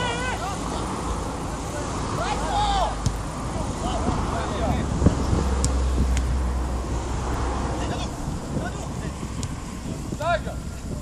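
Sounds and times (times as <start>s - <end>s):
players shouting: 0.0s - 4.8s
steady low rumble: 3.0s - 11.0s.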